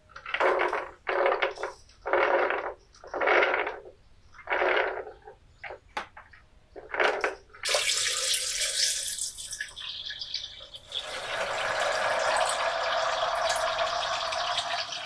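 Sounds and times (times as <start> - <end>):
water pouring into blender jar: 7.7 - 15.0.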